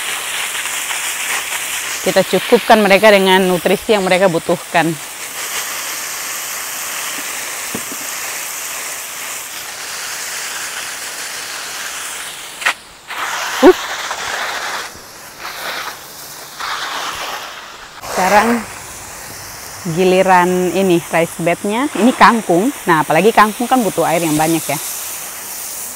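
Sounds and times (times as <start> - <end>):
water hissing from hose nozzle: 0.0 - 25.9.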